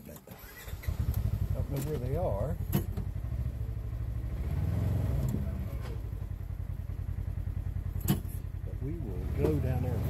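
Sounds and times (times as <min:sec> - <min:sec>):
utv engine running: 0:00.5 - 0:10.0.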